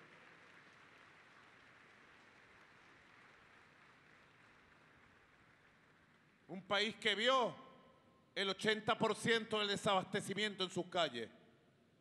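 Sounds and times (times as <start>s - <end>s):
faint audience applause: 0.0s - 6.5s.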